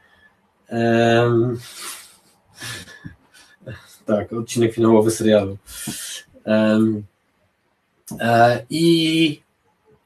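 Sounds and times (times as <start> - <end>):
man hesitating: 0.7 - 2.0, 2.6 - 7.0, 8.1 - 9.3
suppressed laugh: 2.6 - 3.1.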